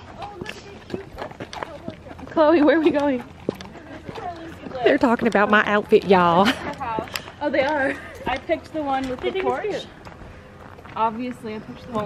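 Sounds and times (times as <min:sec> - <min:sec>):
footsteps and hooves on dirt: 0:00.0 - 0:12.0.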